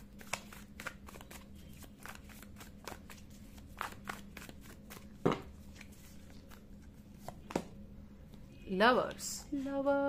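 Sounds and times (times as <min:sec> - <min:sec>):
cards being shuffled: 0:00.2 - 0:07.6.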